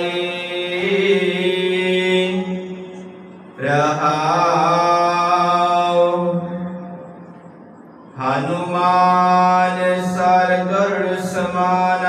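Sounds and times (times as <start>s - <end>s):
man chanting melodically: 0.0s - 6.9s, 8.2s - 12.0s.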